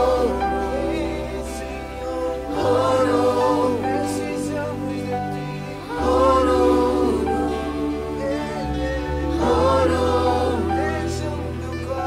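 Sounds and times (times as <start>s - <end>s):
choir singing held notes: 0.0s - 12.0s
low bass: 0.0s - 12.0s.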